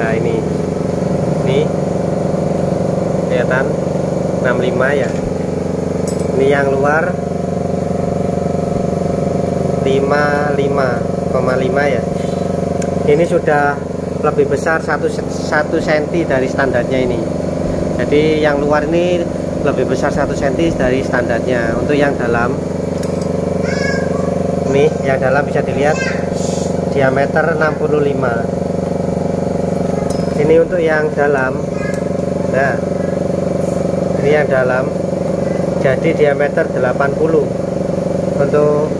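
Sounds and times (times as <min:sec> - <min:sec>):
machine humming: 0:00.0 - 0:38.9
mechanical drone: 0:00.0 - 0:38.9.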